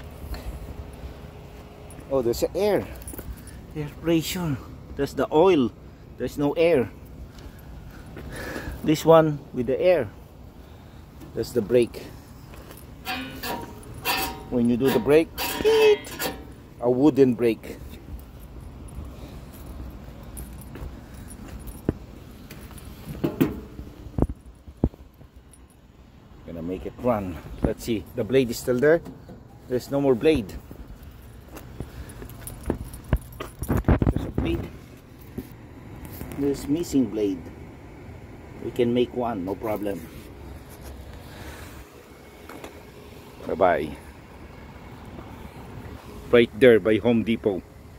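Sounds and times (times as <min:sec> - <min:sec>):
faint low outdoor rumble: 0:00.0 - 0:47.9
steady low rumble: 0:16.4 - 0:28.6.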